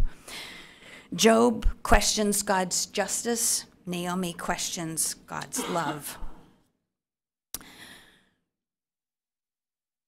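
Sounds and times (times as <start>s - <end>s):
breath at microphone: 7.6s - 8.4s.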